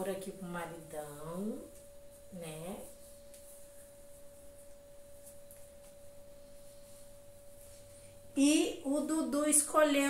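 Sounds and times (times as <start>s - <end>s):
faint steady pure tone: 0.0s - 10.0s.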